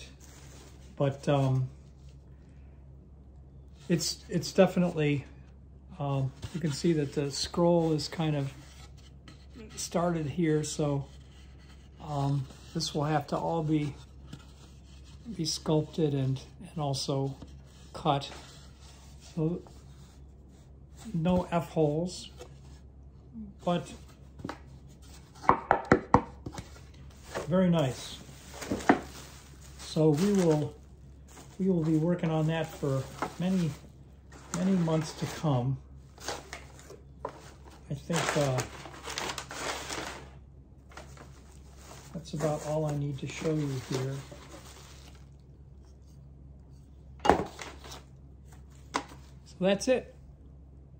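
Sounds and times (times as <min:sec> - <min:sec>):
wooden parts knocking together: 0:25.4 - 0:26.4.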